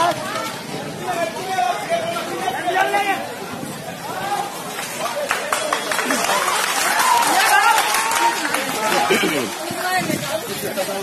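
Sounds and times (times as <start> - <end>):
people shouting and calling out: 0.0 - 11.0.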